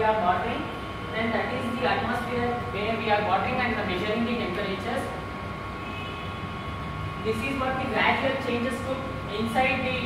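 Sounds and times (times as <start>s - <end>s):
low rumble and hiss: 0.0s - 10.0s
thin steady whine: 0.0s - 10.0s.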